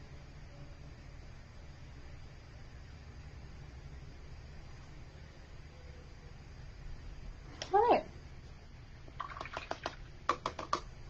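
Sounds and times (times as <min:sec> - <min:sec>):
canvas board knocking on easel: 0:10.3 - 0:10.8.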